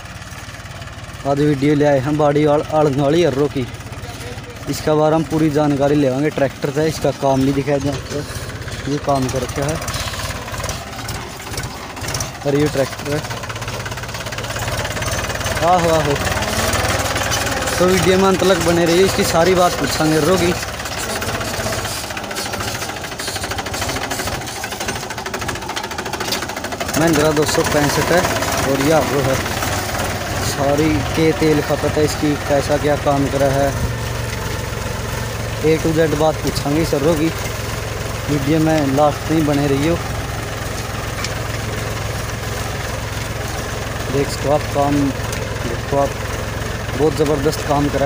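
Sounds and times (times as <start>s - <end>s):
tractor diesel engine running: 0.0s - 48.0s.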